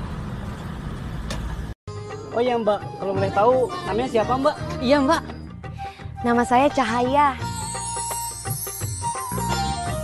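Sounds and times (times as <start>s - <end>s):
low rumble of road traffic: 0.0s - 1.8s.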